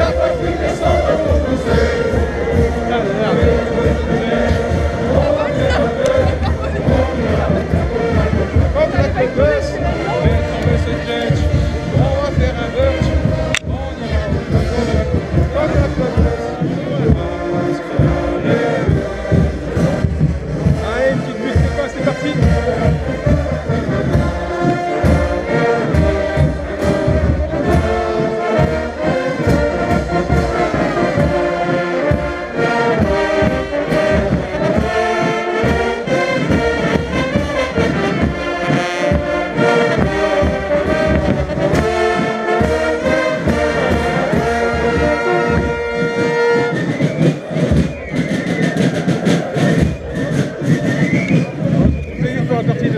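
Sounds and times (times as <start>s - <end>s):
brass and drum band marching tune: 0.0s - 52.9s
crowd voices: 0.0s - 52.9s.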